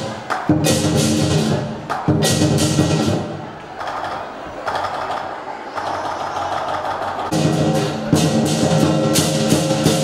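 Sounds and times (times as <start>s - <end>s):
fast percussion roll: 0.0s - 10.0s.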